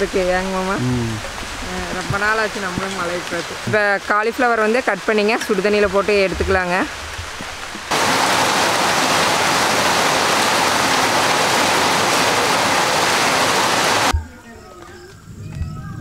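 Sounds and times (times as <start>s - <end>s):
heavy rain pouring: 0.0s - 14.1s.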